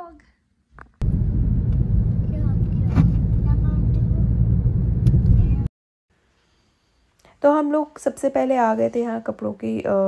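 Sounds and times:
road and engine rumble in car: 0:01.0 - 0:05.7.

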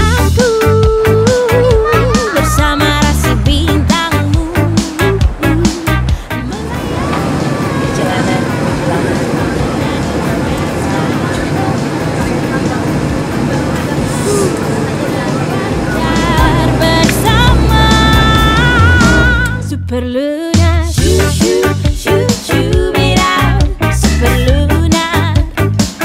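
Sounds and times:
music and singing: 0:00.0 - 0:26.0
steady noise: 0:04.9 - 0:19.6
voices chattering: 0:06.5 - 0:18.9.

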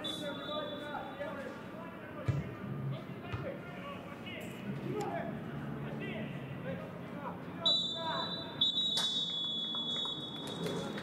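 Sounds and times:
referee's whistle blast: 0:00.0 - 0:01.2, 0:07.7 - 0:10.4.

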